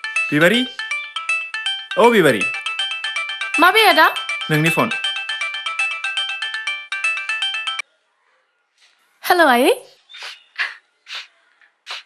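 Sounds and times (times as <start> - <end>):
phone ringtone melody: 0.0 - 7.8.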